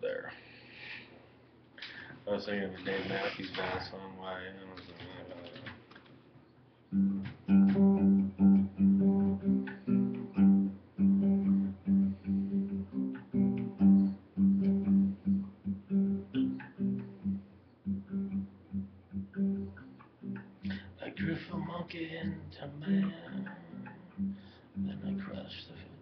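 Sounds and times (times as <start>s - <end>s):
acoustic guitar plucked notes: 6.9s - 25.5s.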